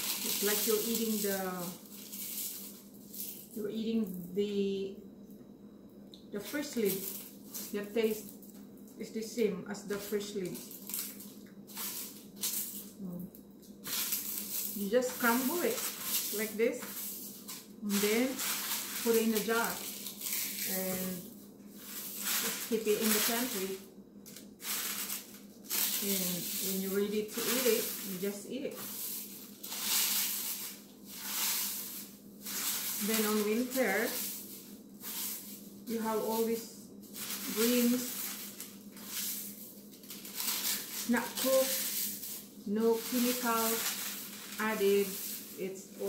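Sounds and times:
dried leaves crumbled crackling: 0:00.0 - 0:04.4, 0:06.4 - 0:46.0.

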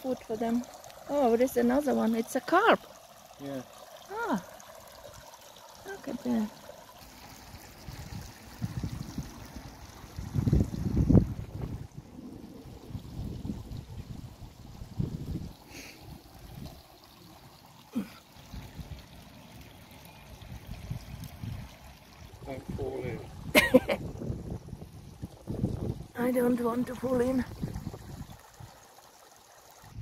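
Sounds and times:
fountain water trickling: 0:00.0 - 0:30.0
wind buffeting microphone: 0:07.8 - 0:15.6, 0:20.4 - 0:28.8.

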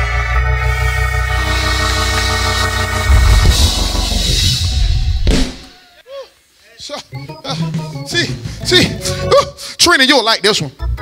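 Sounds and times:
keyboard chords: 0:00.0 - 0:05.1
heavy bass: 0:00.0 - 0:05.7
drums: 0:01.5 - 0:06.0, 0:07.2 - 0:09.5.

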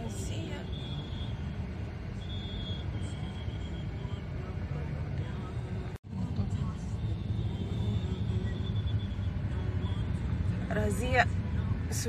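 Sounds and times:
idling cars and motorcycles: 0:00.0 - 0:12.0.

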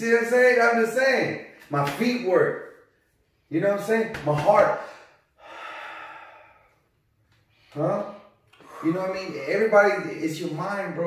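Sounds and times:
man breathing: 0:04.8 - 0:09.2.

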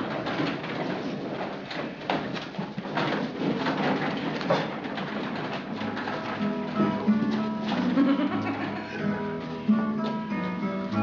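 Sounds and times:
acoustic guitar playing: 0:05.8 - 0:11.0.

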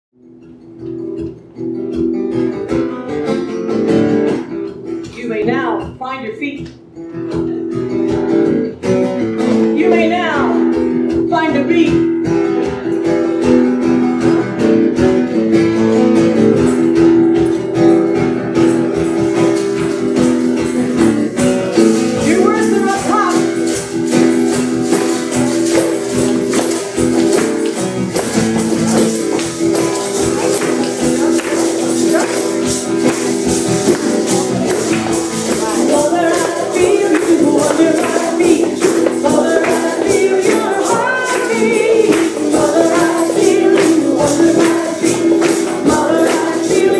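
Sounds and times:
acoustic guitar strummed: 0:00.2 - 0:46.9
hand percussion beat: 0:00.2 - 0:46.9
person singing: 0:28.2 - 0:46.9.

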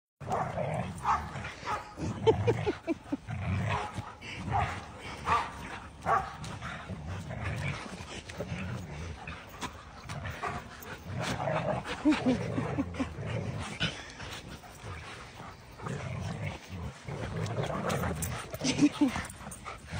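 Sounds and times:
dogs growling and barking: 0:00.2 - 0:19.9.

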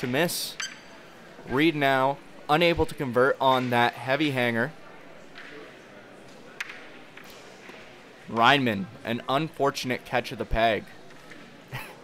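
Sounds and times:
faint murmur of voices in hall: 0:00.0 - 0:12.0.

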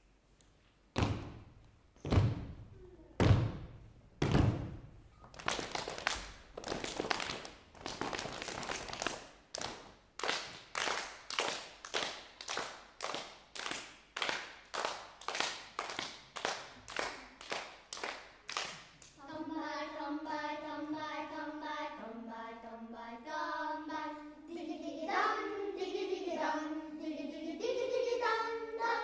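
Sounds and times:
children clapping hands: 0:05.3 - 0:19.2.

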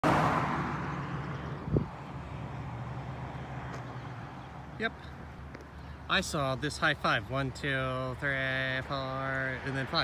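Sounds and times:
car passing by: 0:00.0 - 0:04.5.

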